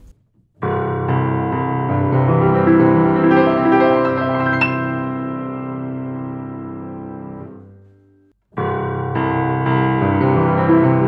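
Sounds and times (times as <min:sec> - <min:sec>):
grand piano playing: 0:00.0 - 0:07.8, 0:08.6 - 0:11.0.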